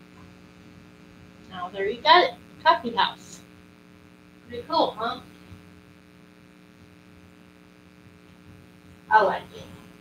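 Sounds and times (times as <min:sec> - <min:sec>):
low electrical hum: 0:00.0 - 0:10.0
woman speaking: 0:01.5 - 0:03.4, 0:04.5 - 0:05.3, 0:09.1 - 0:09.8.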